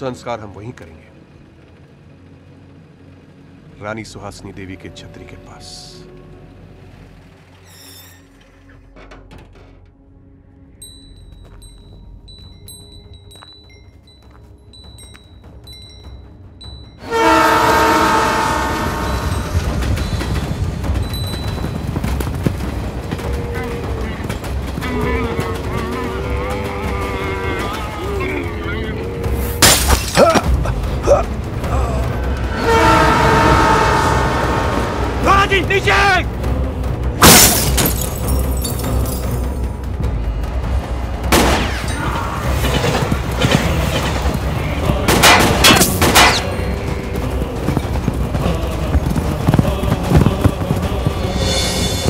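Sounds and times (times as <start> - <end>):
low steady rumble: 0.0 - 7.6
rumble of hooves: 0.0 - 7.6, 8.4 - 29.6, 30.2 - 35.3, 37.9 - 52.0
held wordless vocal notes: 46.4 - 52.0.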